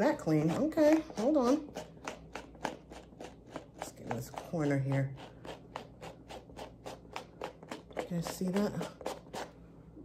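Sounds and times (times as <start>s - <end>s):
eraser scrubbing suede: 0.0s - 9.6s.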